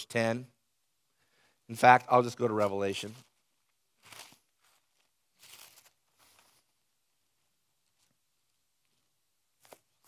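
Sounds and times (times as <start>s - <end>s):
paper pages rustling: 3.2s - 6.8s, 8.8s - 10.0s.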